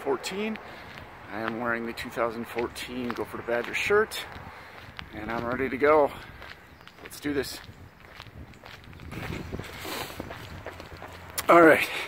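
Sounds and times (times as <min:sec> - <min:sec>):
footfalls on pavement: 0:00.4 - 0:12.0.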